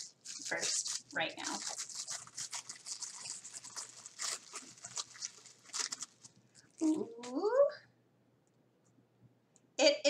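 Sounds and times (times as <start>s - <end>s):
wrapping torn and crinkled: 0.0s - 7.3s.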